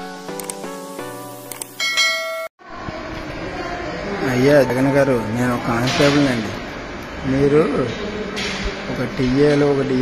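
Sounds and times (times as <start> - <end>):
bright bell-like chime: 1.8 - 2.5.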